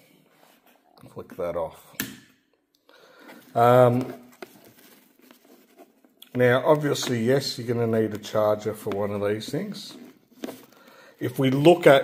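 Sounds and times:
handling rustle: 3.3s - 10.8s.

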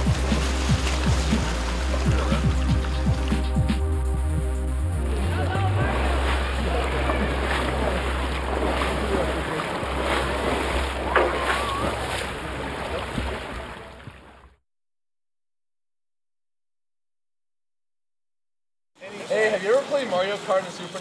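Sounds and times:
water splashing from swimmer: 0.0s - 3.8s, 5.0s - 14.6s
steady low rumble: 0.0s - 13.5s
background voices: 5.0s - 10.8s.

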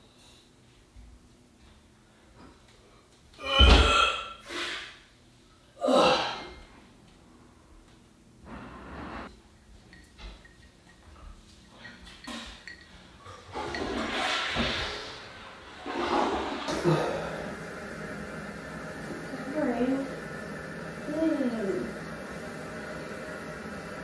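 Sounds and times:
water rushing into toilet bowl: 13.5s - 24.0s.

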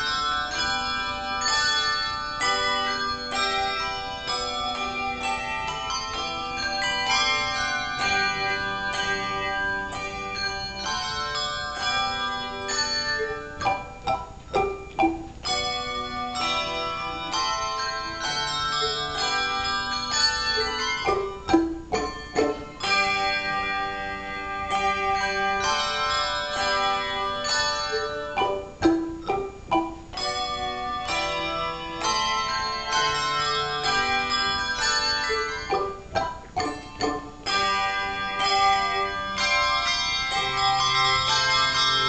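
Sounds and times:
handbells ringing chords: 0.0s - 42.0s.

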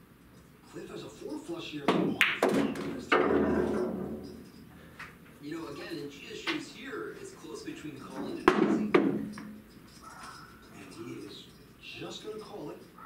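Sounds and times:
sharp hard knocks with ringing: 1.9s - 4.6s, 8.3s - 9.7s.

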